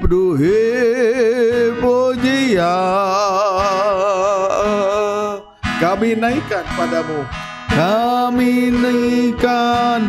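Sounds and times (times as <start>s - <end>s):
man singing a hymn: 0.0s - 10.0s.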